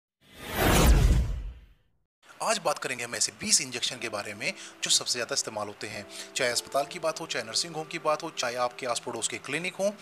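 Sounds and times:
whoosh with deep rumble: 0.4s - 1.7s.

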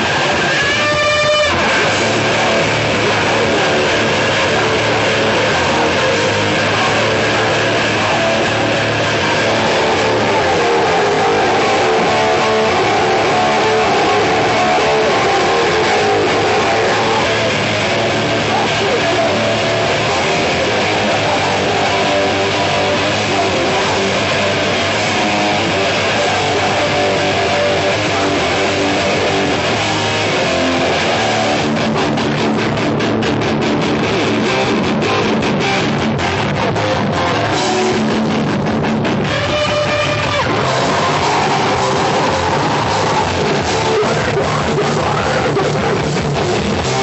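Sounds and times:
bass guitar: 0.0s - 47.0s
distorted electric guitar: 0.0s - 47.0s
drums: 0.0s - 47.0s.

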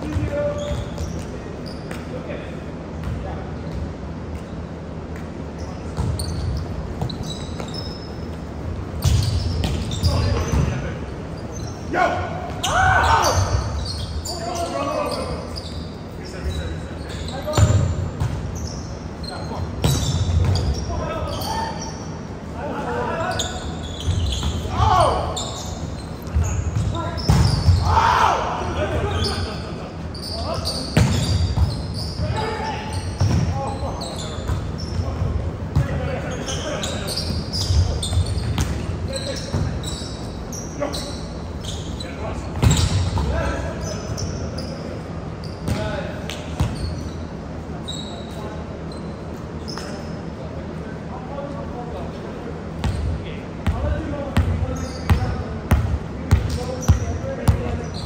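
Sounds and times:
players shouting: 11.9s - 15.4s, 24.6s - 25.7s, 27.5s - 29.8s.

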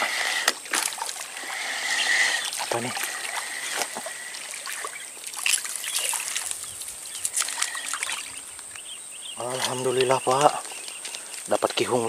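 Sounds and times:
fish splashing in water: 0.0s - 8.6s.

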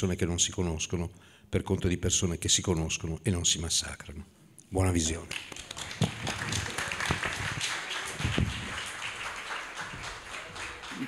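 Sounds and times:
audience applauding: 5.3s - 11.0s.

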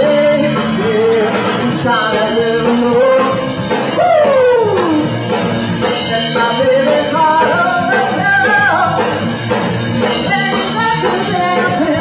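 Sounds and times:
rock band playing: 0.0s - 12.0s
female singer singing: 6.3s - 9.1s, 10.2s - 12.0s.

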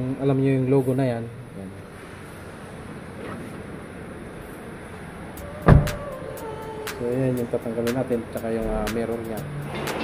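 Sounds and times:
loud thump: 5.7s - 6.0s.

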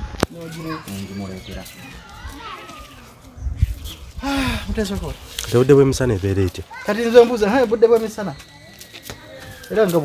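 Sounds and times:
people talking in background: 0.0s - 10.0s.

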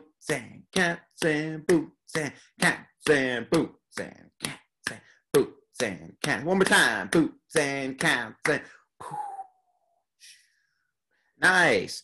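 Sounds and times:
man beatboxing: 0.0s - 8.8s.

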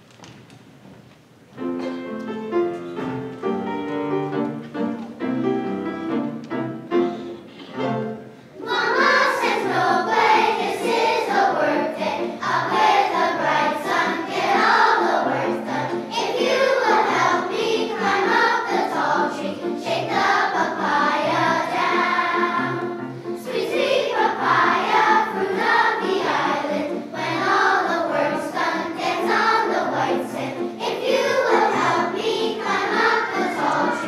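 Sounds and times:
grand piano accompaniment: 0.0s - 34.0s
children's choir singing: 7.3s - 34.0s.

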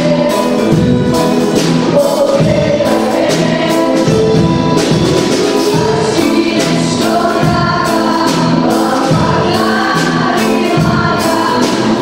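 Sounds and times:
girls' choir singing in harmony: 0.0s - 12.0s
strummed string band: 0.0s - 12.0s.

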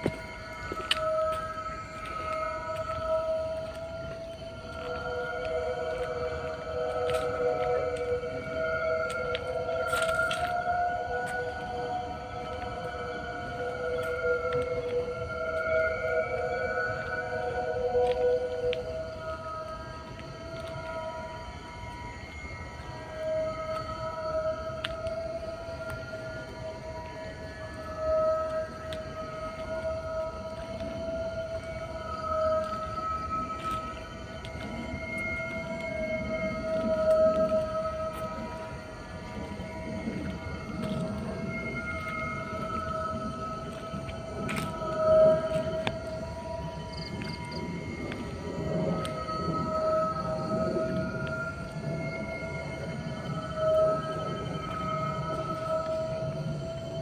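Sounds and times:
eerie droning music: 0.0s - 57.0s.

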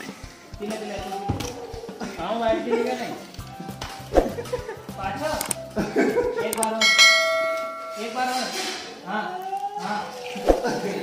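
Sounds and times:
voices: 0.0s - 11.0s
bell ringing: 6.7s - 8.4s.

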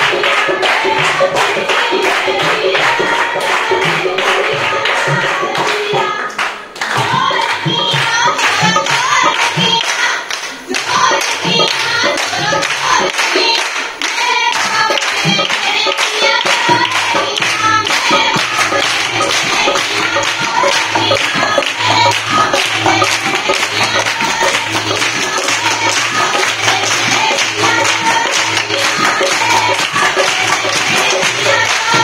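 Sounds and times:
group hand clapping: 0.0s - 32.0s
women singing: 0.0s - 32.0s.

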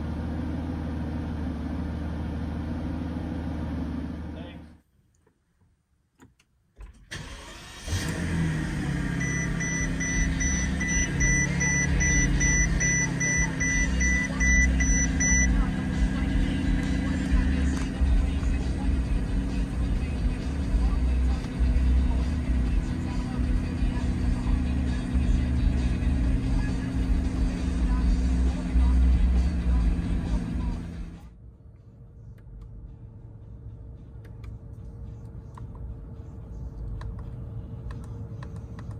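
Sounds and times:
car engine starting and idling: 0.0s - 5.4s, 6.0s - 38.9s
car warning chime beeping: 9.1s - 15.7s.

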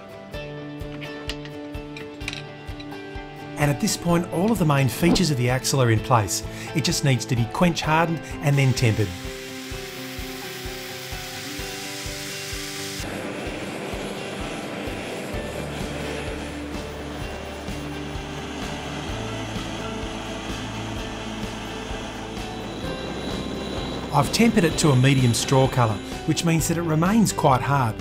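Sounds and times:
background music: 0.0s - 28.0s
hissing flame: 7.9s - 26.8s.

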